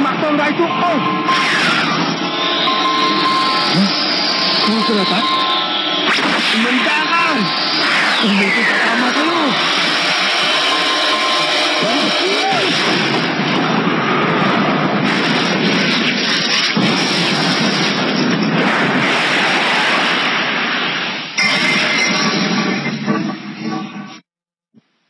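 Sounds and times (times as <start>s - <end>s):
loud rushing roar: 0.0s - 21.2s
rising and falling tones: 0.6s - 14.8s.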